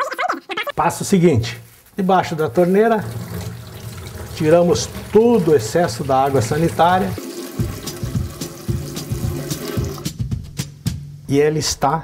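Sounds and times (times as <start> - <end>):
tap water running into steel sink: 2.3 - 10.1.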